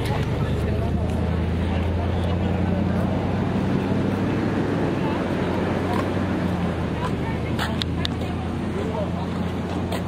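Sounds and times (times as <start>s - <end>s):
faint voices of passers-by: 0.0s - 10.0s
street noise rumble: 0.0s - 10.0s.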